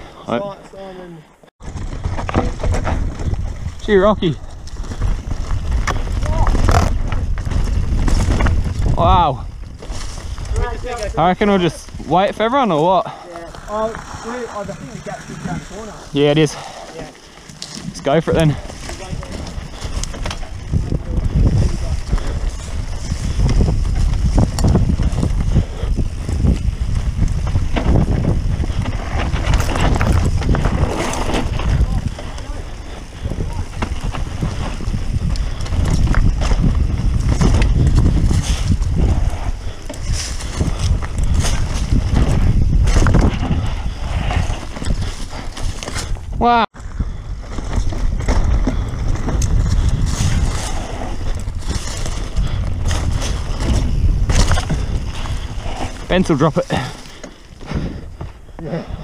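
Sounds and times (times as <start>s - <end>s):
bike rattling and knocking: 1.6s - 59.0s
tyres running over dirt: 1.6s - 59.0s
wind buffeting microphone: 1.6s - 59.0s.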